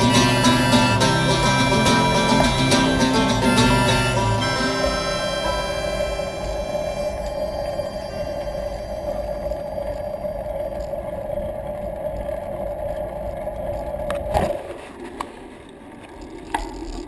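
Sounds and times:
background music: 0:00.0 - 0:09.5
tyre rumble hum: 0:00.0 - 0:14.6.

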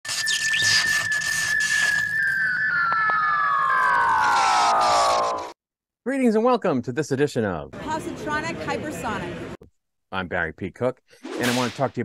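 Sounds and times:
high whistle-like tone gliding down: 0:00.0 - 0:05.6.

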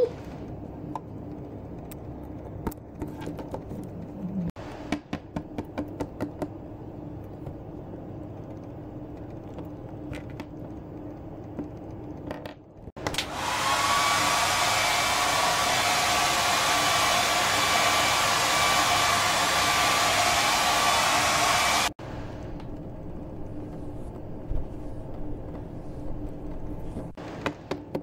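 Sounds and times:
hair dryer running: 0:13.0 - 0:22.0
hair dryer switch click: 0:13.1 - 0:13.4.

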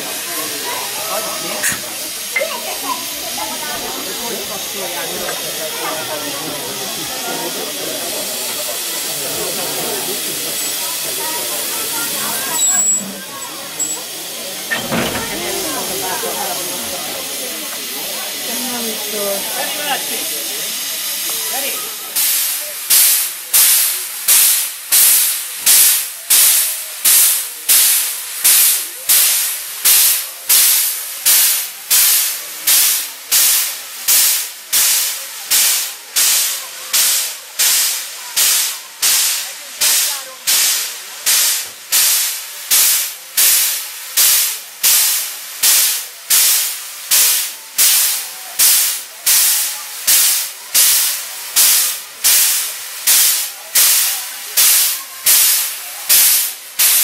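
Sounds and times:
steam locomotive hissing puffs: 0:00.0 - 0:57.0.

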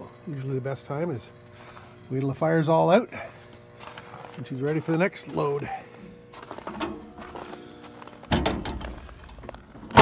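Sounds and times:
steel door clunking shut: 0:08.2 - 0:10.0.

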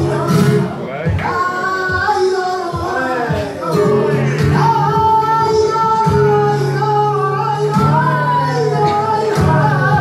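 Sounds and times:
flamenco guitar: 0:00.0 - 0:10.0
man singing flamenco: 0:00.0 - 0:10.0.

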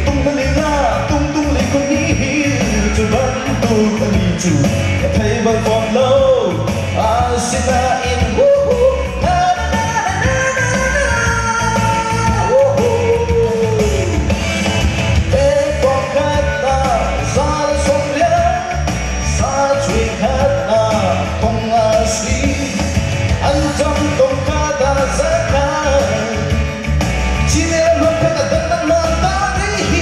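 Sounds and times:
man singing into microphone: 0:00.0 - 0:14.4, 0:15.3 - 0:30.0
amplified backing music: 0:00.0 - 0:30.0.

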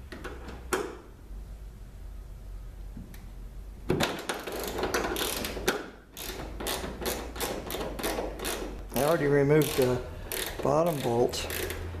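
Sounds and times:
ratcheting wrench clicking: 0:04.3 - 0:11.9.

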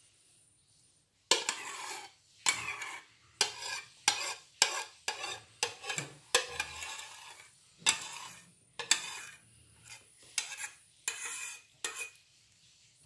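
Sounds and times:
spoon scraping a bowl: 0:01.3 - 0:12.4.

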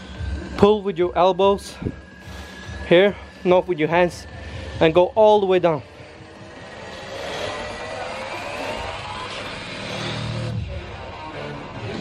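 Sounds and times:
cable whirring over pulleys: 0:00.0 - 0:12.0.

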